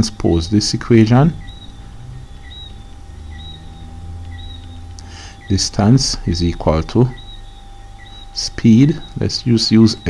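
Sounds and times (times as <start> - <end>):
faint steady tone: 0.0 - 10.0
low background hum: 0.0 - 10.0.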